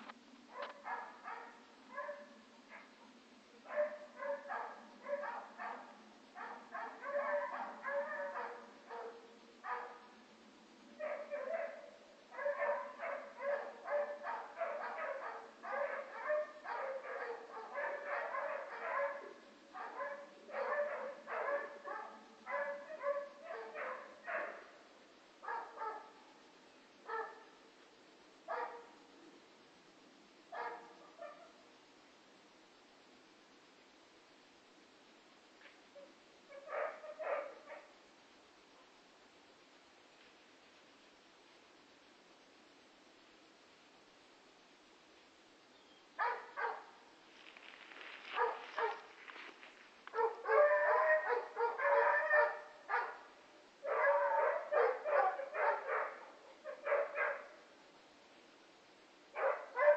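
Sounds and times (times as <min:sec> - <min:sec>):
dog barking: 0:00.5 - 0:03.0, 0:03.6 - 0:10.1, 0:11.0 - 0:24.8, 0:25.4 - 0:26.3, 0:27.0 - 0:27.6, 0:28.5 - 0:29.0, 0:30.5 - 0:31.6, 0:36.0 - 0:38.0, 0:46.2 - 0:47.0, 0:48.2 - 0:49.5, 0:50.1 - 0:57.6, 0:59.4 - 0:59.9.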